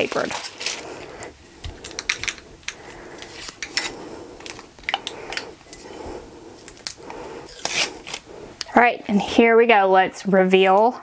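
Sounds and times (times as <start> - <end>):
tape tearing: 7.5 - 8.2.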